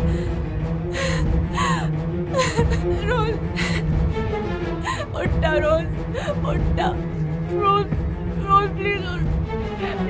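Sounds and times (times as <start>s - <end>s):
low background music drone: 0.0s - 10.0s
woman sobbing: 1.0s - 3.9s, 4.8s - 7.0s.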